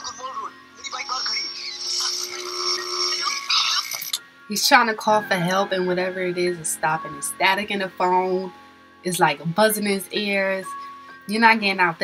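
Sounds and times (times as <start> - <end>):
electronic buzzing and static: 0.0 - 4.2
steady whining tones: 0.8 - 4.2.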